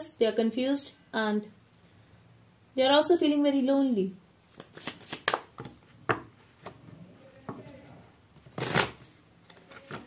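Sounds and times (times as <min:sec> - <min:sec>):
cards being shuffled: 0:04.5 - 0:05.8, 0:08.4 - 0:10.0.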